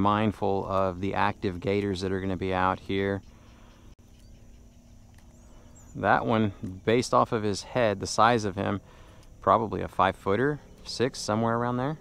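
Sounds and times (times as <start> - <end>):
faint open-air background: 0.0 - 12.0
low hum: 0.0 - 12.0.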